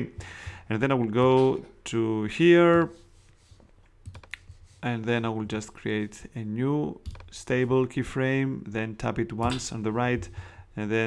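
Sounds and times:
mouse and keyboard clicks: 0:04.0 - 0:04.5.

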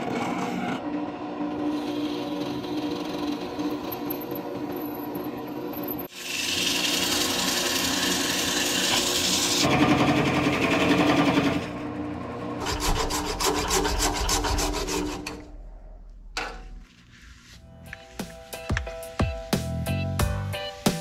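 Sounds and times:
tool rasping on spinning wood: 0:12.6 - 0:15.3.

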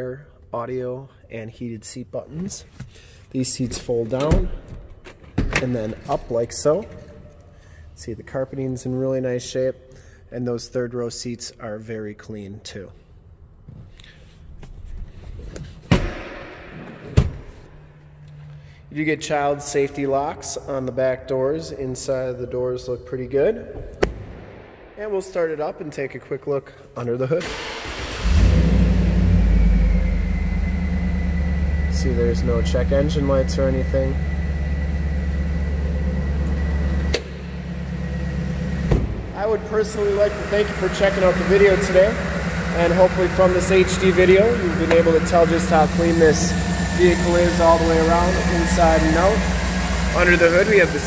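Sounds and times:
engine idling: 0:27.5 - 0:51.0
sharp thumps inside car cabin: 0:38.8 - 0:39.3.

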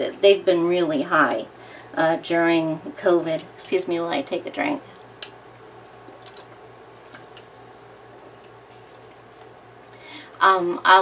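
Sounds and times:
low steady hum: 0:00.0 - 0:11.0
person sipping and swallowing: 0:06.1 - 0:10.0.

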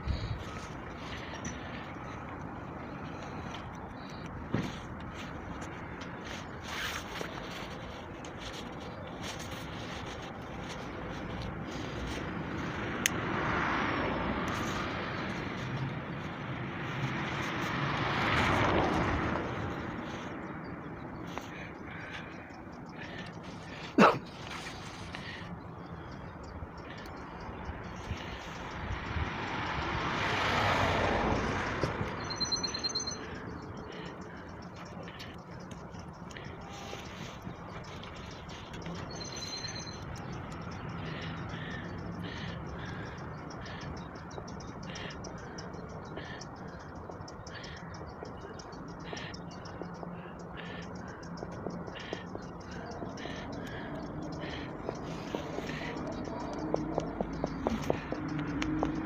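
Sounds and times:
traffic noise: 0:00.0 - 0:59.0
high chirp: 0:32.2 - 0:33.3, 0:39.0 - 0:40.1.

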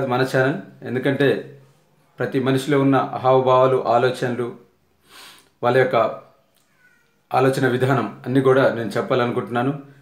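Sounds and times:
man breathing: 0:05.0 - 0:05.5
faint high-pitched squeak: 0:06.6 - 0:07.4.

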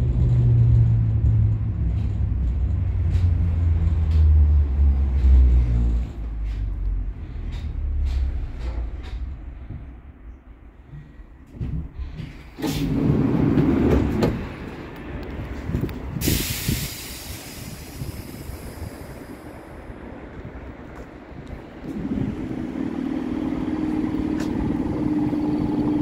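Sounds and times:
train steady hum: 0:00.0 - 0:26.0
compressed air hissing: 0:16.2 - 0:19.8.

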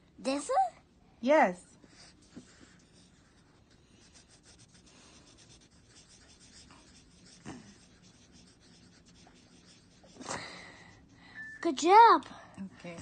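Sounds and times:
marker scribbling on paper: 0:01.8 - 0:10.4.

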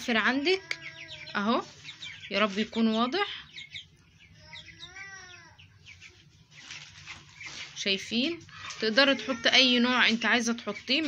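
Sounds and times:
chicks peeping: 0:00.0 - 0:11.0.

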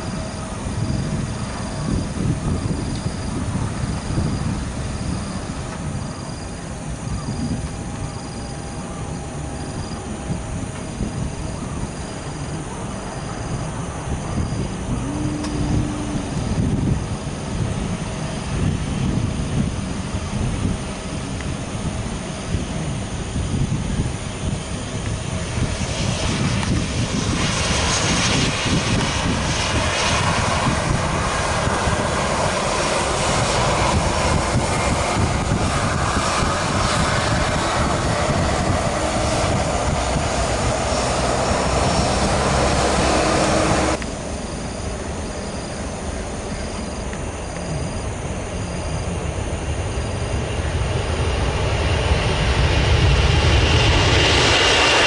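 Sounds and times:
jet engines roaring: 0:00.0 - 0:55.0.

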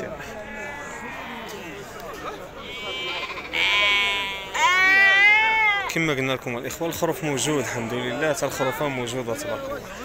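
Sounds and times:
sheep bleating: 0:00.1 - 0:01.9, 0:02.5 - 0:05.9, 0:07.3 - 0:09.4.

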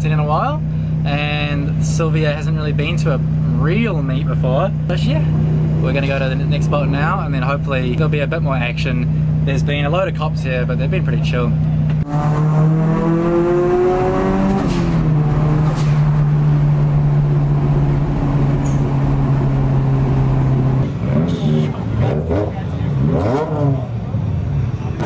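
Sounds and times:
car engine from inside cabin: 0:00.0 - 0:24.2.

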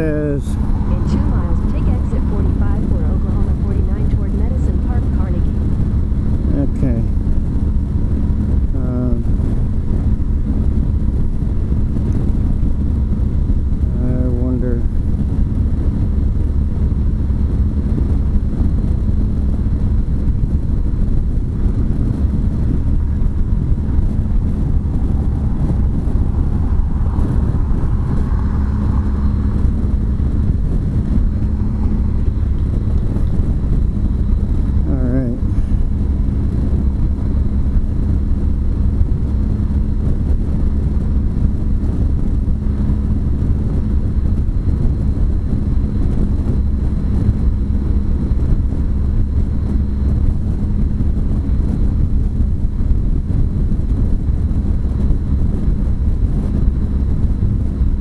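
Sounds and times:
motorcycle engine hum: 0:00.0 - 0:58.0
wind and road noise: 0:00.0 - 0:58.0.

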